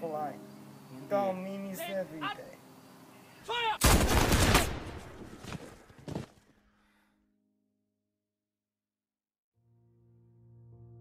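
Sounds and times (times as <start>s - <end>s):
single gunshots: 3.8s - 5.3s
gunfire volley: 3.8s - 5.4s.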